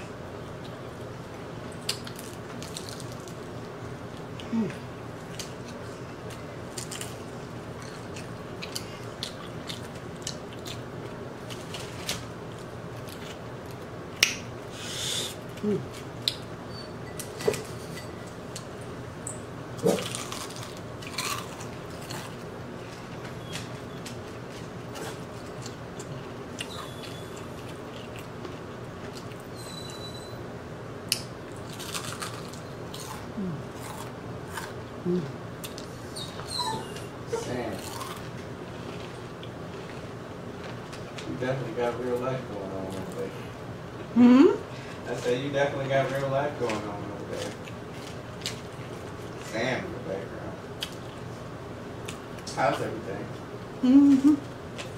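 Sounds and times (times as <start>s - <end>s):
steady low hum: 0.0s - 54.9s
crisp crunching of food: 1.8s - 4.4s, 5.2s - 13.9s, 19.8s - 29.4s, 31.5s - 34.8s, 37.5s - 41.4s
louder snaps: 14.2s - 14.4s.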